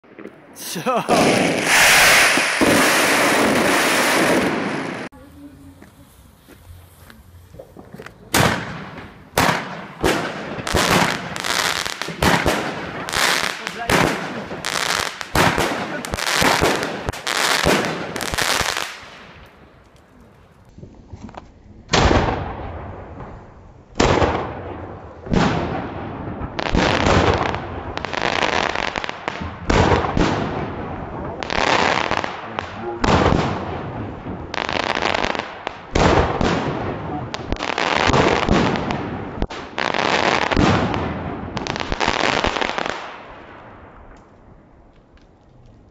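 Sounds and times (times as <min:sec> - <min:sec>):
fireworks shots and bursts: 0:00.0 - 0:05.8, 0:07.4 - 0:19.5, 0:21.3 - 0:44.1
slowed deep firework bursts: 0:00.0 - 0:19.8, 0:20.7 - 0:45.2.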